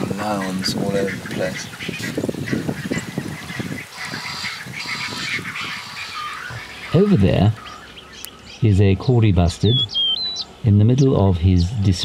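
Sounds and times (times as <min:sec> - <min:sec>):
low animal calls: 0:00.0 - 0:12.0
high-pitched animal calls: 0:01.0 - 0:08.6, 0:09.6 - 0:10.6.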